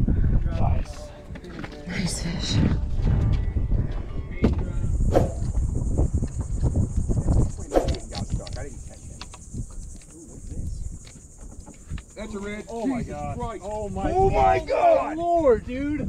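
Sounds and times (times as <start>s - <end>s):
low rumble: 1.9s - 11.1s
insects buzzing: 3.9s - 15.2s.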